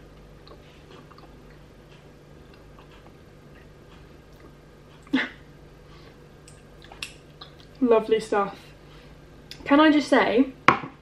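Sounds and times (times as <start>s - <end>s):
faint chewing: 0.1s - 5.2s.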